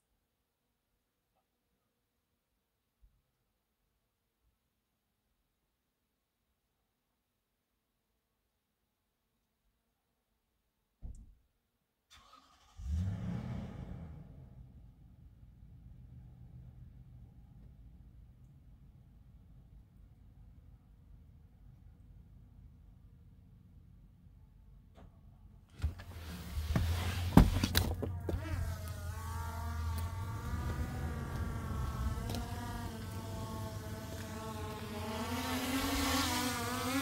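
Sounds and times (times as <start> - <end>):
vehicle engine starting: 12.1 - 17.7, 25.7 - 37.0
drone propellers whining: 28.0 - 37.0
low hum: 28.0 - 37.0.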